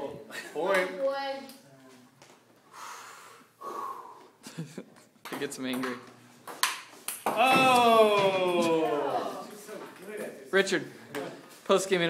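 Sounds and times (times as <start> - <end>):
people laughing: 4.4 - 5.1.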